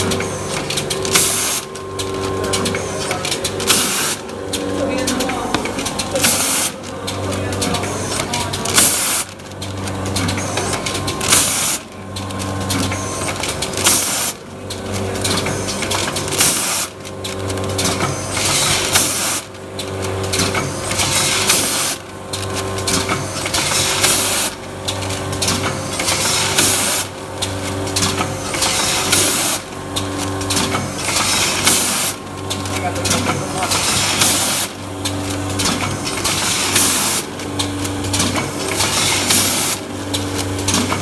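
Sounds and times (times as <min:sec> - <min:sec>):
packing machine humming and clattering: 0:00.0 - 0:41.0
sharp burst of machine noise: 0:06.2 - 0:06.8, 0:10.2 - 0:11.9, 0:12.7 - 0:14.4, 0:15.2 - 0:17.0.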